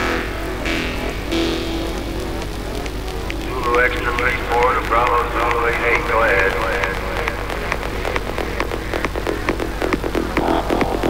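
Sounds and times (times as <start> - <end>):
techno bass in a club: 0.0 - 11.0
person speaking: 1.1 - 8.5.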